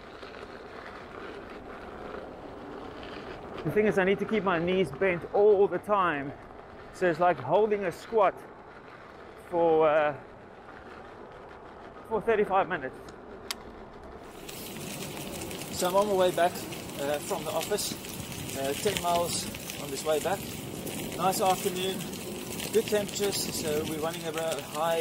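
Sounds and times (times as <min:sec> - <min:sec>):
unicycle tyres on gravel: 0:00.0 - 0:25.0.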